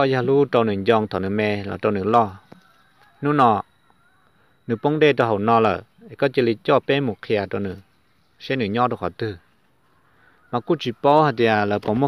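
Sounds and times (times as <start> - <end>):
man speaking: 0.0 - 3.7, 4.7 - 9.6, 10.4 - 12.0.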